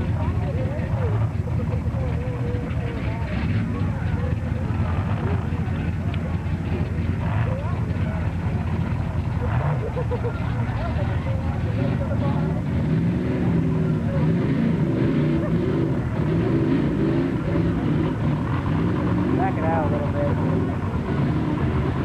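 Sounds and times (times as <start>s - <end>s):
engines droning: 0.0s - 22.0s
spectators' voices: 0.0s - 22.0s.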